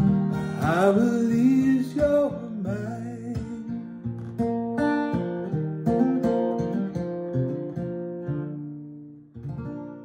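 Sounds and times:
acoustic guitar fingerstyle: 0:00.0 - 0:10.0.

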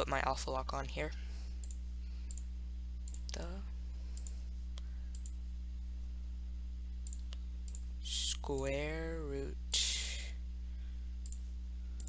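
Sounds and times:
low electrical hum: 0:00.0 - 0:12.0
computer mouse clicks: 0:01.6 - 0:03.4, 0:04.1 - 0:05.4, 0:07.0 - 0:07.9, 0:11.2 - 0:11.4.

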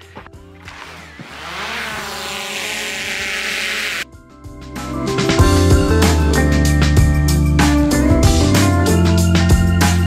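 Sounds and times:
background music: 0:00.0 - 0:02.4, 0:04.1 - 0:10.0
whooshing riser: 0:00.7 - 0:04.0.

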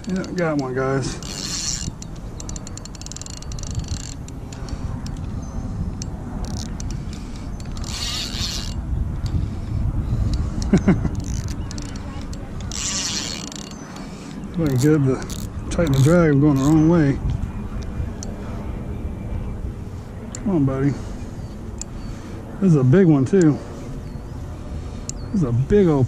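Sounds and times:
fishing reel cranking: 0:00.0 - 0:05.3, 0:06.0 - 0:16.9
reel drag buzzing: 0:00.0 - 0:18.6
wind on microphone: 0:00.0 - 0:26.0.

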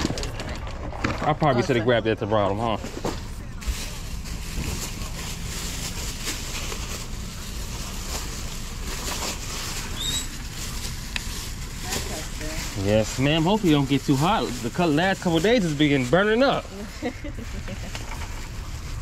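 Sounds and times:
low rumbling background noise: 0:00.0 - 0:19.0.

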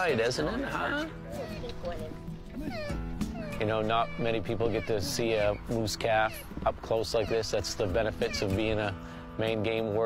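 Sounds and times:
soft background music: 0:00.0 - 0:10.0
moose calf bleating: 0:01.4 - 0:09.0.

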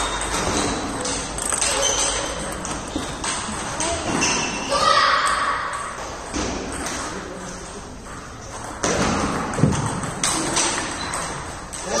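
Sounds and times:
ping-pong ball clicks: 0:00.0 - 0:04.4.

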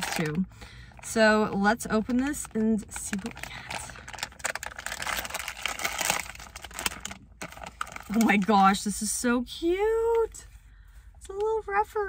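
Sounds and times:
plastic bag crinkling: 0:00.0 - 0:00.4, 0:02.0 - 0:08.7.

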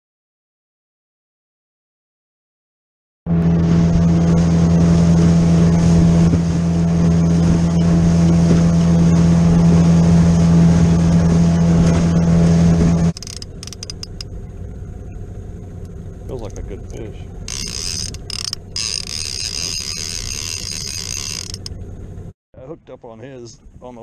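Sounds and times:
water and wind rushing: 0:03.3 - 0:22.3
outboard motor running: 0:03.3 - 0:22.4
sharp clicks: 0:13.1 - 0:14.3, 0:15.8 - 0:21.8.

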